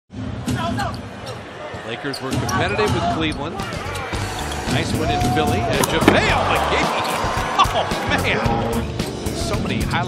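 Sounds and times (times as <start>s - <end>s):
hum of arena crowd: 0.2s - 10.0s
basketball bouncing on hardwood: 5.8s - 6.4s.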